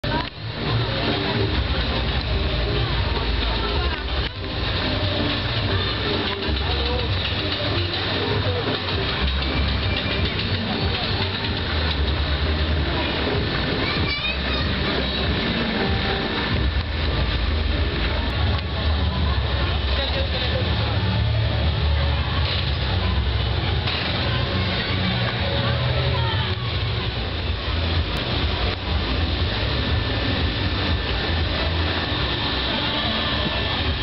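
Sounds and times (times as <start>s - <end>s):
fairground background noise: 0.0s - 34.0s
funfair noise: 0.0s - 34.0s
low machine rumble: 0.0s - 34.0s.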